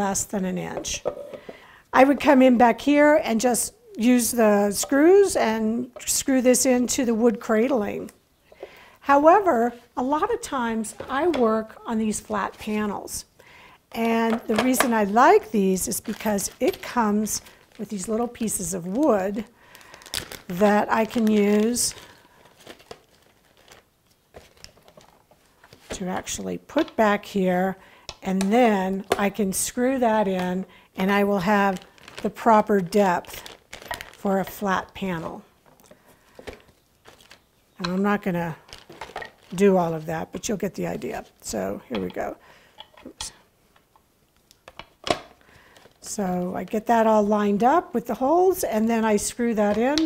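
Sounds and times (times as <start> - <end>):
plastic bag crinkling: 14.2 - 26.0, 29.1 - 41.6, 44.7 - 46.2.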